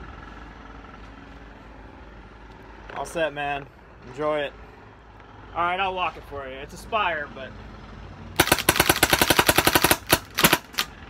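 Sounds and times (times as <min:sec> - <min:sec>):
paintball marker firing: 0:08.4 - 0:10.9.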